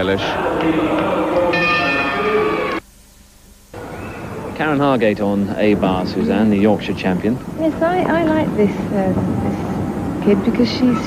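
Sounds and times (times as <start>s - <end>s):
noisy background: 0.0s - 11.0s
bell-like ringing tones: 1.4s - 2.8s.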